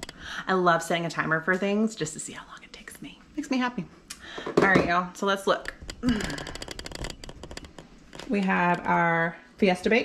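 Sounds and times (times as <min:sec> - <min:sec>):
camera handling rustling and clicking: 0:05.8 - 0:08.8.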